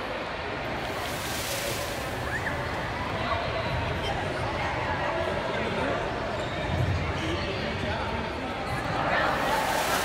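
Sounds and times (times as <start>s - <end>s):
voices chattering in a hall: 0.0s - 10.0s.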